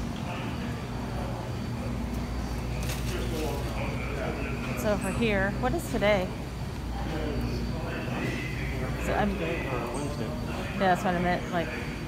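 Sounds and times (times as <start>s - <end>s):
faint indistinct voices: 0.0s - 12.0s
steady low hum: 0.0s - 12.0s.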